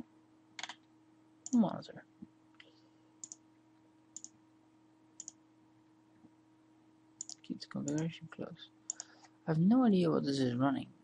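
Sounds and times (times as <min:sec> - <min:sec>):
computer mouse clicks: 0:00.6 - 0:00.8, 0:02.6 - 0:03.4, 0:04.2 - 0:04.4, 0:05.2 - 0:05.4, 0:07.2 - 0:08.0, 0:08.9 - 0:09.3.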